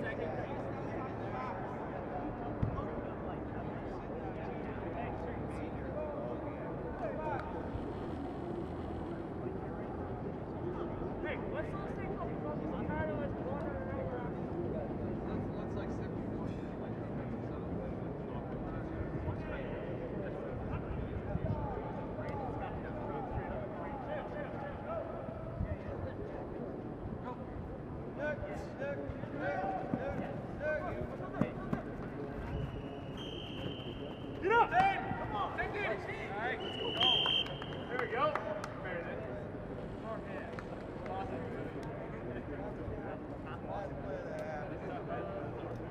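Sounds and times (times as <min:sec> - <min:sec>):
distant voices of players calling: 0:29.3 - 0:38.8
short high whistle tones: 0:32.4 - 0:34.4, 0:36.6 - 0:37.9.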